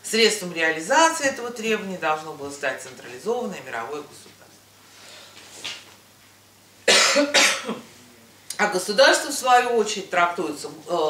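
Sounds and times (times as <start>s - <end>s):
woman coughing: 6.8s - 7.9s.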